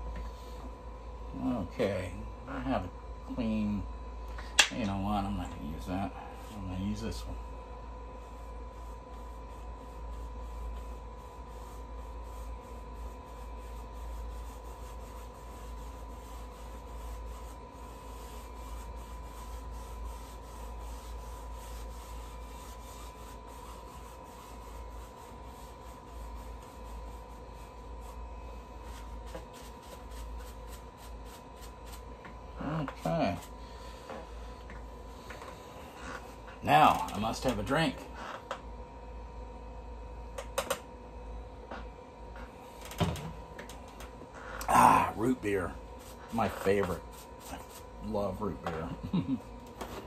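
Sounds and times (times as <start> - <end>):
faint hum: 0.0 - 50.0
paintbrush scrubbing canvas: 8.1 - 37.5, 45.1 - 49.4.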